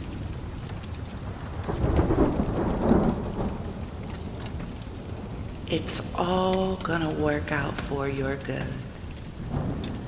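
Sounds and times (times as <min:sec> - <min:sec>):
steady rain: 0:00.0 - 0:10.0
thunder rolling: 0:00.0 - 0:10.0.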